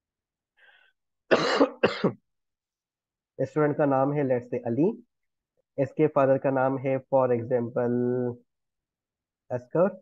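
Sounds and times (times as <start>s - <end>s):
man coughing: 1.3s - 2.3s.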